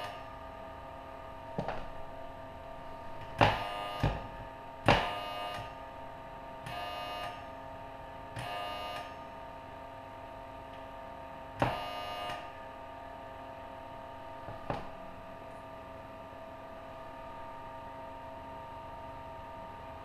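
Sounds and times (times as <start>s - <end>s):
faint steady hum: 0.0s - 20.0s
electrical buzzing bursts: 3.4s - 5.7s.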